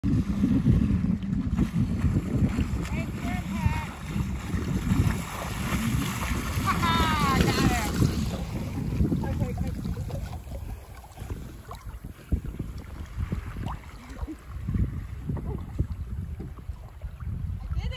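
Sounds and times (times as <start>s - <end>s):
water washing around a boat: 0.0s - 17.9s
wind buffeting microphone: 0.0s - 17.9s.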